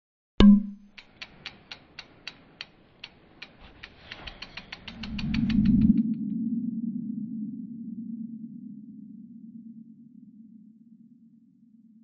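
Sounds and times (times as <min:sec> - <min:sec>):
ratchet-like clicks: 0:00.4 - 0:06.0.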